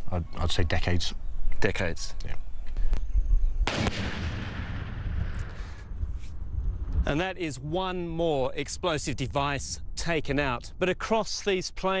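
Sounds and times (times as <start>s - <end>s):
explosion blast: 3.7s - 6.0s.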